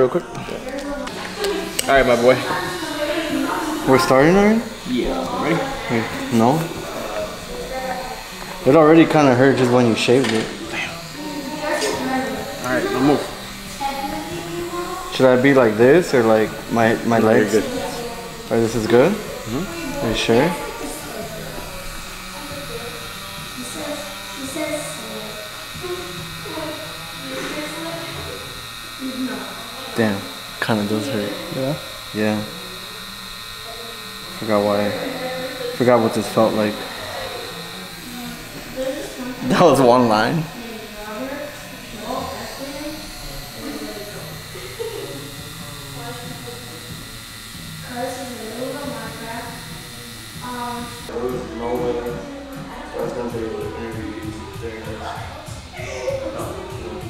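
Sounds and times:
low voices: 0.0 - 57.0
tattoo machine buzzing: 0.0 - 57.0.

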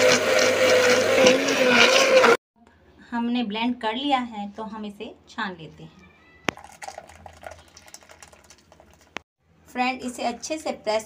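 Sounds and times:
juice sloshing in steel vessel: 6.5 - 9.2.

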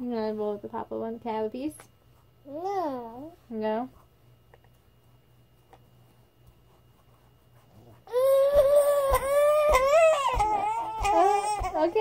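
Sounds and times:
toddler wailing and crying: 8.1 - 12.0.

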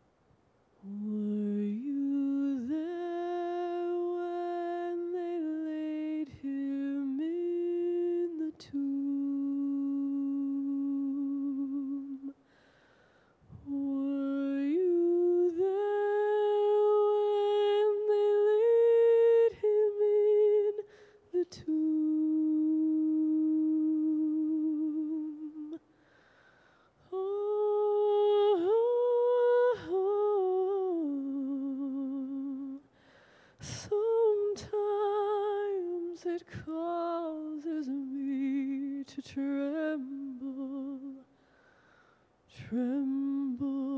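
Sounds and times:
woman singing unaccompanied: 0.8 - 12.5, 13.5 - 25.9, 27.0 - 33.0, 33.6 - 41.4, 42.5 - 43.9.

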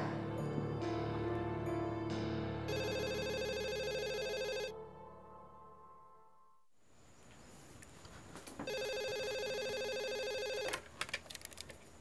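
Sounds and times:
telephone ringer warbling: 2.7 - 4.7, 8.7 - 10.7.

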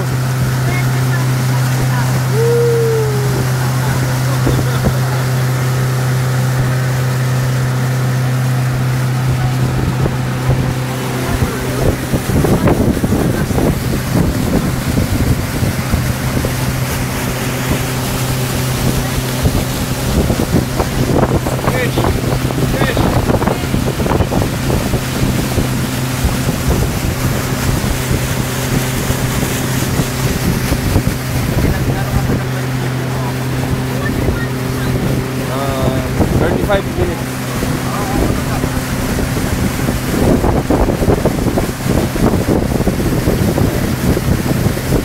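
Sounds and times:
motorboat engine droning: 0.0 - 45.0
water rushing along hull: 0.0 - 45.0
wind buffeting microphone: 0.0 - 45.0.

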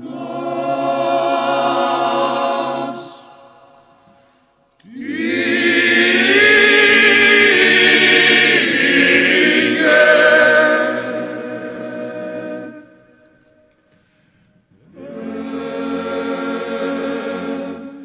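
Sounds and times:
male choir singing a cappella: 0.0 - 3.8, 4.8 - 13.2, 14.8 - 18.0.

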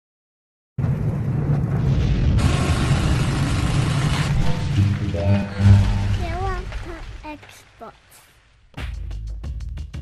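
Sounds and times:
deep cinematic rumble: 0.8 - 7.2.

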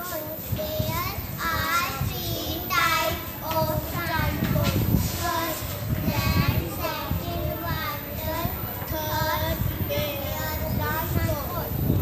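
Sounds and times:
girls singing into a microphone: 0.8 - 12.0.

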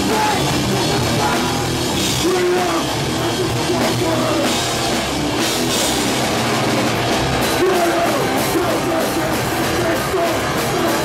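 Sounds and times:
drum kit with cymbals: 0.0 - 11.0
electric guitar: 0.0 - 11.0.

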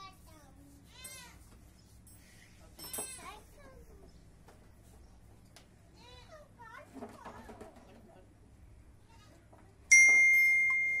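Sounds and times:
metallic ding: 9.9 - 11.0.

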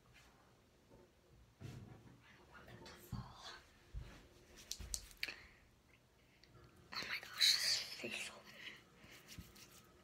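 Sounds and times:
girl whispering: 2.5 - 3.7, 6.9 - 8.8.

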